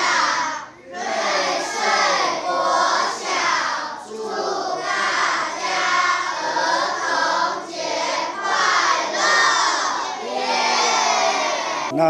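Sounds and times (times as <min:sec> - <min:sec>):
children shouting in unison: 0:03.0 - 0:11.9.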